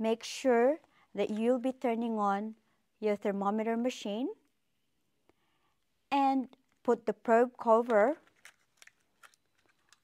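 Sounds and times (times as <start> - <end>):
plastic clicks and rustles: 7.8 - 10.0.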